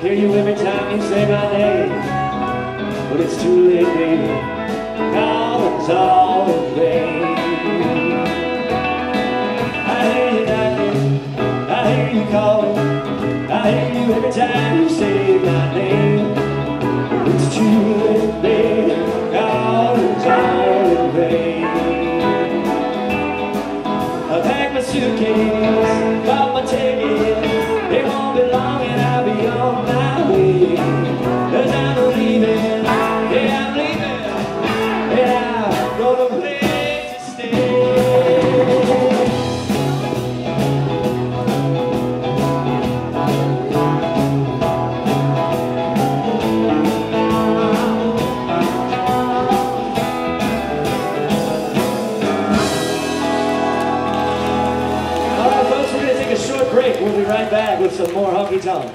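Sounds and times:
country band playing: 0.0 - 58.9.

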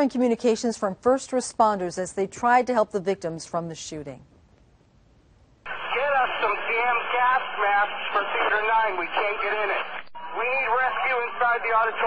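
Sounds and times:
voices over two-way radio: 5.7 - 12.0.

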